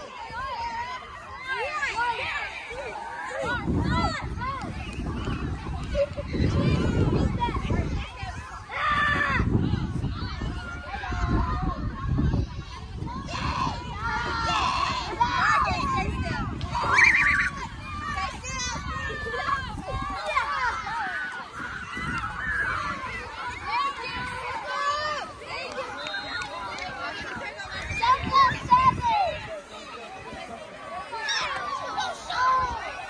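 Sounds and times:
children shouting: 0.0s - 33.0s
wind rumbling on microphone: 2.2s - 25.8s, 26.4s - 30.6s.

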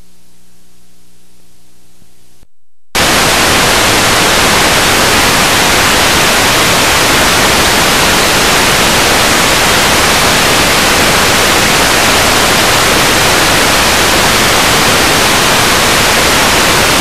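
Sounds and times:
faint low hum: 0.0s - 5.2s
static hiss: 3.0s - 17.0s.

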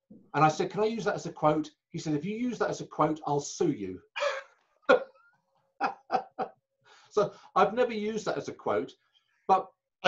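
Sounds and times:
man laughing: 4.2s - 6.5s.

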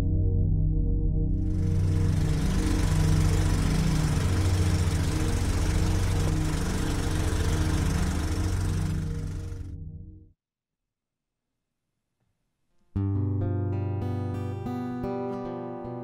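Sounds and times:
low ambient music: 0.0s - 10.3s
film projector whirring clatter: 1.5s - 9.6s.

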